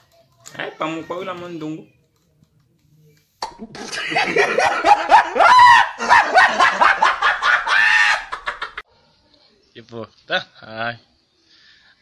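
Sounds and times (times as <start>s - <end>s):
man laughing loudly: 3.8s - 8.8s.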